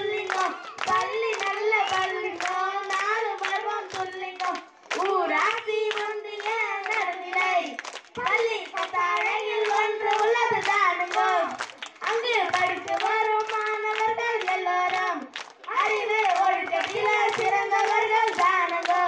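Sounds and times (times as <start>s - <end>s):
children singing into microphones: 0.0s - 19.0s
hands clapping in rhythm: 0.0s - 19.0s.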